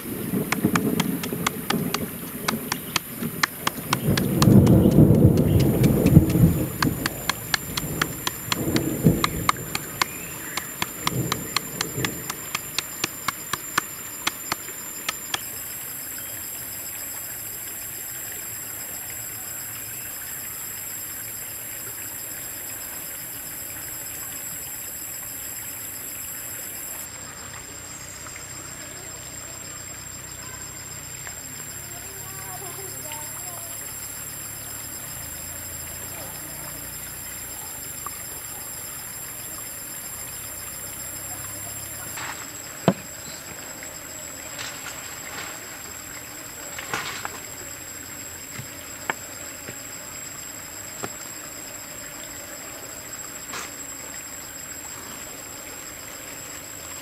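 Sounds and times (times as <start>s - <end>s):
faint steady hiss: 0.0s - 57.0s.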